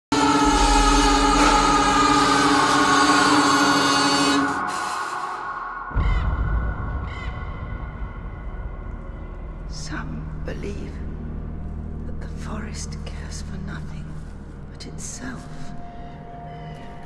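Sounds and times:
horror score chord over drone: 0.1s - 13.2s
low boom: 5.8s - 10.4s.

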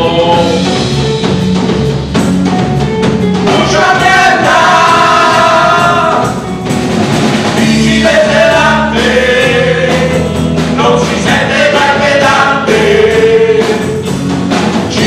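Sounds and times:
men singing together: 0.0s - 0.8s, 3.4s - 6.4s, 7.5s - 14.2s
bass: 0.0s - 15.0s
drums: 0.0s - 15.0s
electric guitars: 0.0s - 15.0s.

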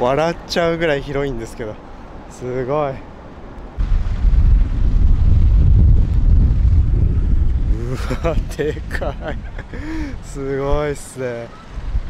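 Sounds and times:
wind buffeting microphone: 3.4s - 12.0s.

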